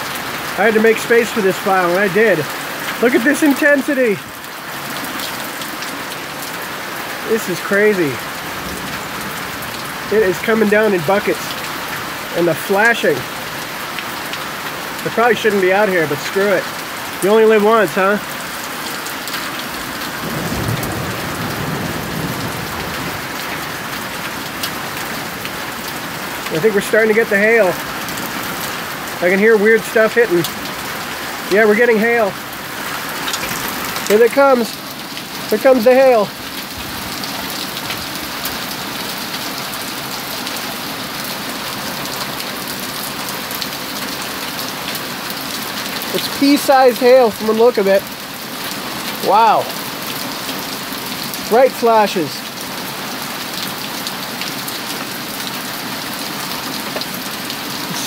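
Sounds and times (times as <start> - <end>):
heavy rain pouring: 0.0 - 58.0
low rumble of thunder: 20.1 - 24.2.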